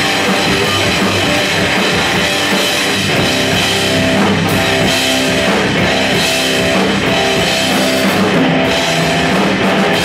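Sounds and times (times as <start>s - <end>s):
bass guitar: 0.0s - 10.0s
distorted electric guitar: 0.0s - 10.0s
drum kit: 0.0s - 10.0s.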